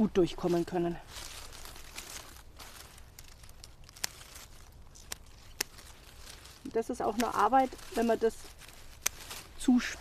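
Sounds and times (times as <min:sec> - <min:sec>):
dry leaves rustling and crinkling: 0:00.0 - 0:10.0.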